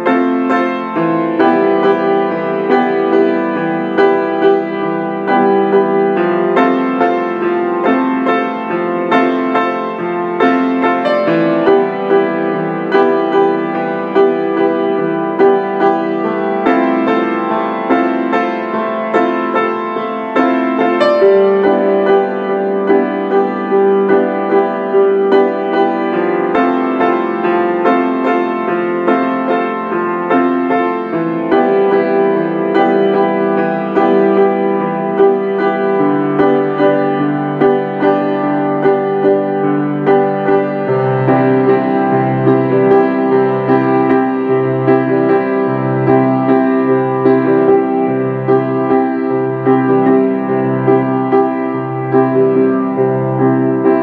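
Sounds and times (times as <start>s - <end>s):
low piano bass notes: 0.0s - 54.0s
slow solo piano piece: 0.0s - 54.0s.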